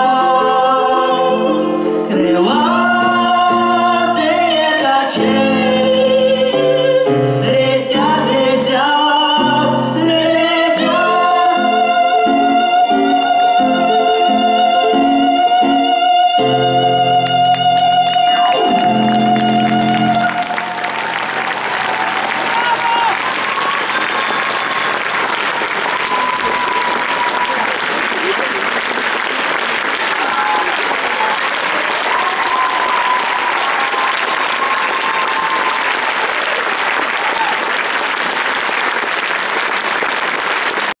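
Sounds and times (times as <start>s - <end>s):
audience applauding: 17.5s - 41.0s.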